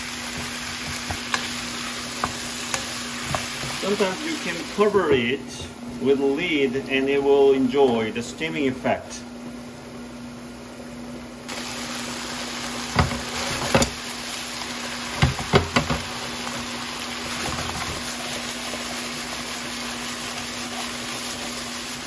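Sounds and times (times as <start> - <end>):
food sizzling in a wok: 0.0 - 6.1, 9.4 - 22.0
lid and utensil knocking on pan: 0.3 - 1.5, 13.0 - 14.0, 15.2 - 16.1.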